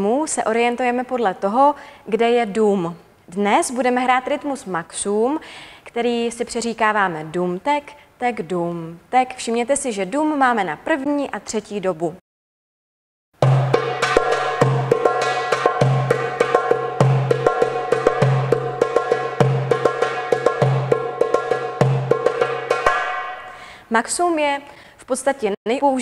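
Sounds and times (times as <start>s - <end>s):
goblet drum playing: 13.4s - 23.7s.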